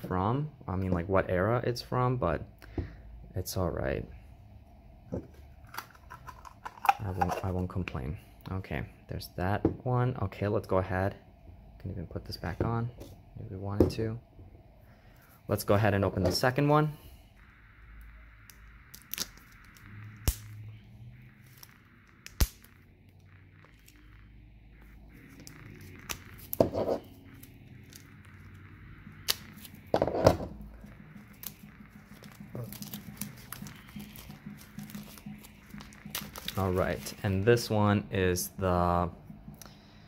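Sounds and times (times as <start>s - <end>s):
plastic wrap crinkling: 30.8s - 37.3s.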